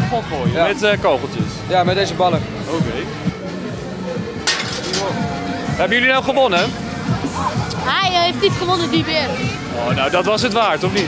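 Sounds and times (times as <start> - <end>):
background music: 0.0 - 11.0
ball smashing a plate: 4.4 - 5.1.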